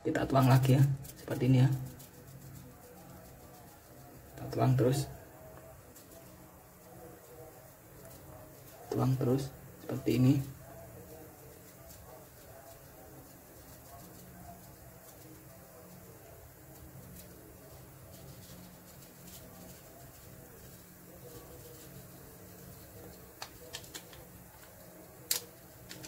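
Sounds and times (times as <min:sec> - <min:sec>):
faint distant voices: 0:00.0 - 0:26.0.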